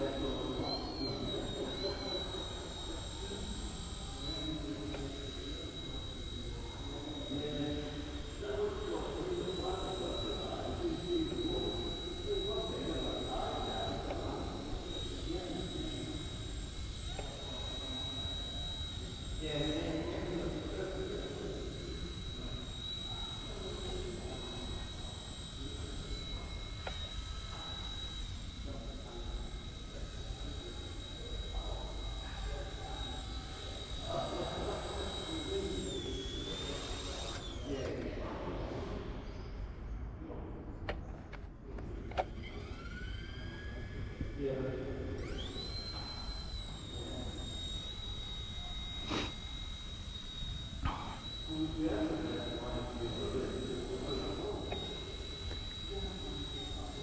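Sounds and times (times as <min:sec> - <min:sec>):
rc helicopter whining: 0:00.0 - 0:57.0.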